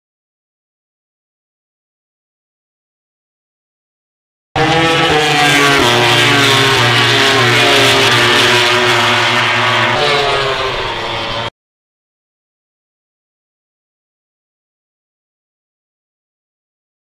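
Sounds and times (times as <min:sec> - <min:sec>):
racing motorcycle engine revving: 0:04.6 - 0:11.5.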